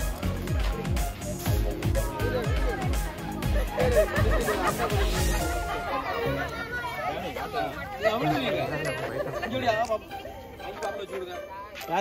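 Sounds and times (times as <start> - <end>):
group chatter: 0.0 - 12.0.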